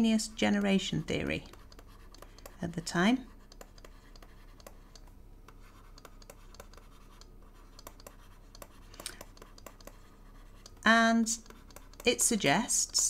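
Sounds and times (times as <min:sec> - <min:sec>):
stylus scratching on drawing tablet: 0:00.0 - 0:13.0.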